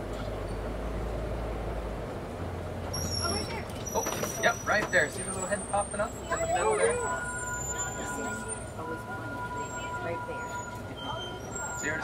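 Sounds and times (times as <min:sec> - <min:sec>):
truck engine rumble: 0:00.0 - 0:12.0.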